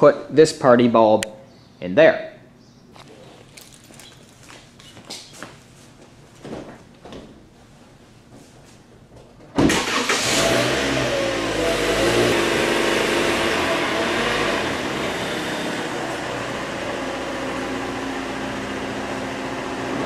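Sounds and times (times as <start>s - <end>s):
car engine idling: 9.8s - 20.0s.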